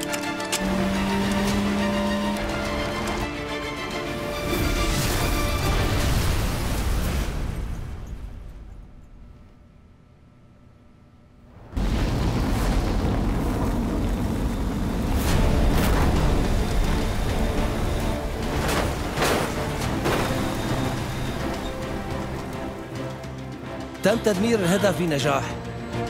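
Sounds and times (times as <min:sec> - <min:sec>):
dramatic film score: 0:00.0 - 0:10.9, 0:11.7 - 0:26.0
explosion blast and rumble: 0:04.8 - 0:08.9, 0:11.5 - 0:21.4.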